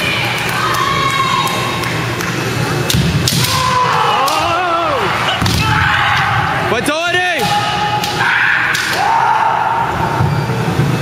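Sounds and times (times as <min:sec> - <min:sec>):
people shouting in a gym: 0:00.0 - 0:10.7.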